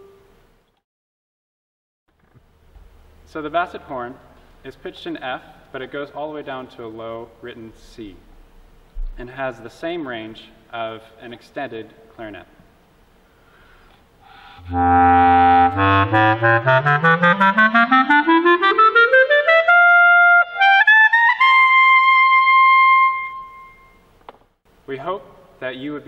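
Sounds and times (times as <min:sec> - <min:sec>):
basset horn playing a rising scale: 0:14.3 - 0:24.0.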